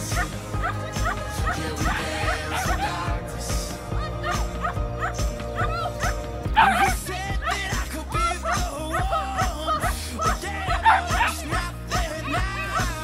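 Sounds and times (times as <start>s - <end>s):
pop song with steady beat: 0.0s - 13.0s.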